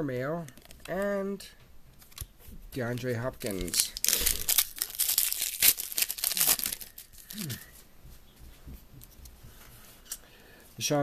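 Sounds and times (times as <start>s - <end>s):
plastic wrapper tearing and crinkling: 2.0s - 7.6s.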